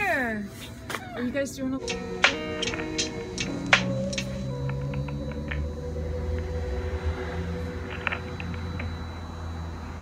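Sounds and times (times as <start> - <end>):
thin steady hum: 1.8 - 10.0.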